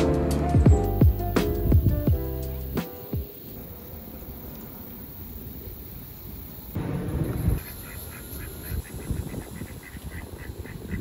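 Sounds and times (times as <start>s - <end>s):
ducks quacking: 7.6s - 11.0s.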